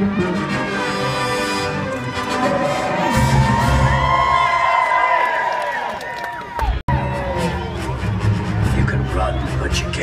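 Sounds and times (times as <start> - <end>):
orchestral film music: 0.0 - 4.1, 6.9 - 10.0
crowd cheering and whooping: 2.2 - 10.0.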